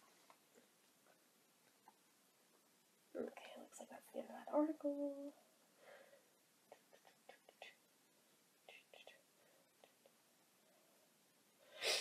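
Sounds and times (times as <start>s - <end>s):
soft whispering: 3.1s - 5.5s, 6.7s - 7.9s, 8.6s - 11.0s.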